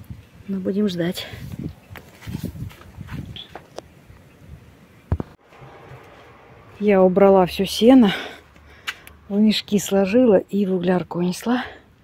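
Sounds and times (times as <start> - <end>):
soft footsteps: 1.5 - 3.8.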